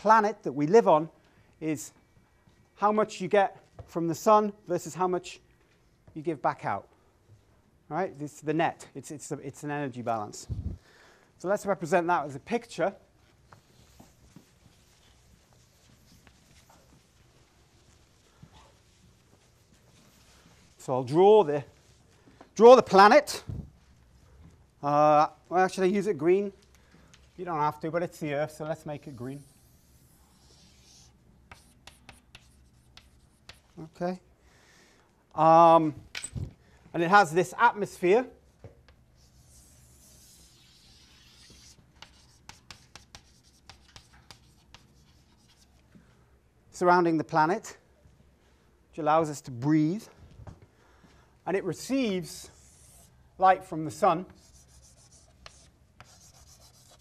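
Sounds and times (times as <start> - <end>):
chalkboard eraser swishing: 29.0 - 33.6, 39.2 - 45.7, 52.4 - 53.2, 54.4 - 57.0.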